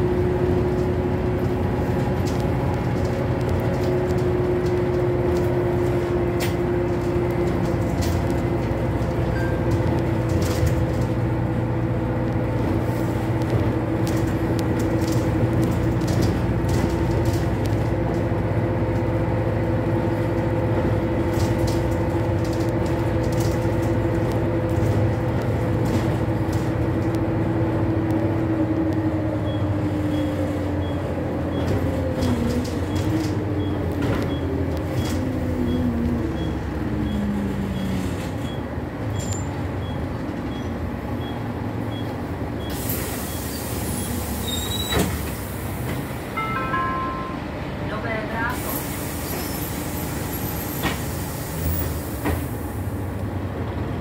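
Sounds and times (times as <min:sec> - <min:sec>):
bus diesel engine droning: 0:00.0 - 0:54.0
road noise: 0:00.0 - 0:54.0.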